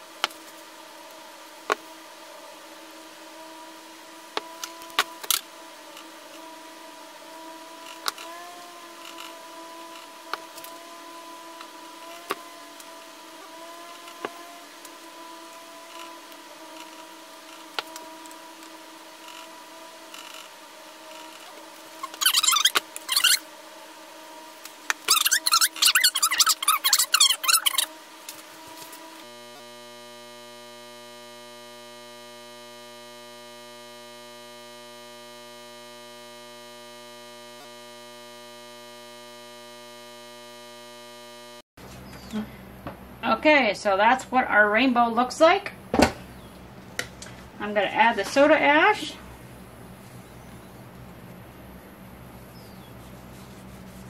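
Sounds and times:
faint steady hum: 0:00.0 - 0:54.0.

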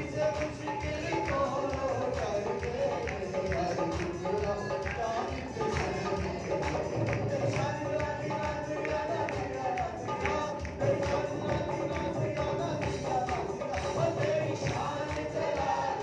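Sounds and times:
man singing into a microphone: 0:00.0 - 0:16.0
steady percussion beat: 0:00.0 - 0:16.0.

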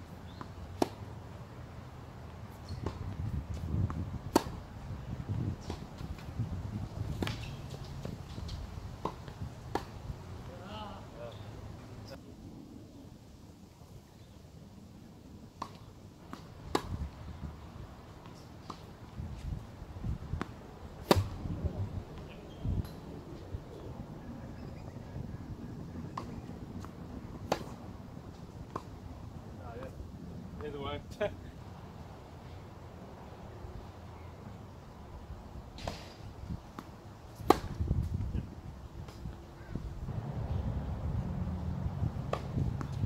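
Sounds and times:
tennis ball bouncing on court: 0:00.3 - 0:01.0, 0:04.3 - 0:04.6, 0:08.4 - 0:10.0, 0:15.6 - 0:17.0, 0:20.4 - 0:21.4, 0:26.1 - 0:27.8, 0:36.8 - 0:37.8, 0:42.2 - 0:43.0
tennis ball struck by racket: 0:00.3 - 0:01.0, 0:02.7 - 0:04.6, 0:07.1 - 0:10.0, 0:15.6 - 0:17.0, 0:20.3 - 0:21.5, 0:26.1 - 0:27.8, 0:35.8 - 0:38.1, 0:42.2 - 0:43.0
tennis racket striking ball: 0:04.3 - 0:04.6, 0:20.4 - 0:21.4, 0:37.4 - 0:37.8.

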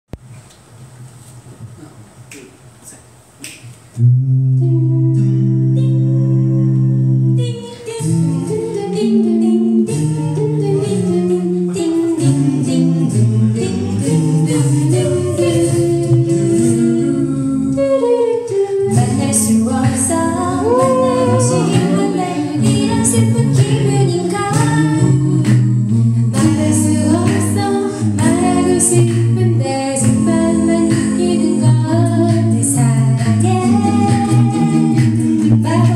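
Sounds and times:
finger snaps: 0:02.3 - 0:02.6, 0:03.4 - 0:03.9
a cappella group singing: 0:04.0 - 0:35.9.

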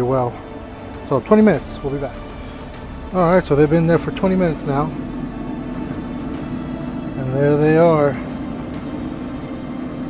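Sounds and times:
pellet grill fan humming: 0:00.0 - 0:10.0.

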